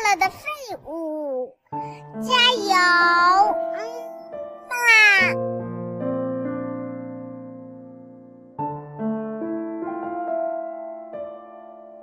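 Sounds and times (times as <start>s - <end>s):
calm piano music: 1.4s - 12.0s.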